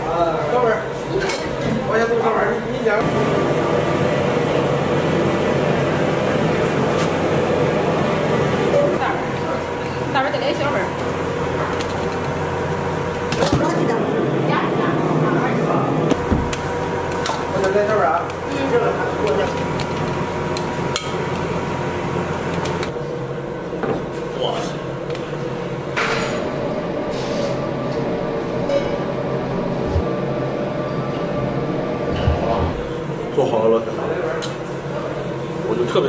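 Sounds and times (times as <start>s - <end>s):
steady hum: 25.3s - 35.3s.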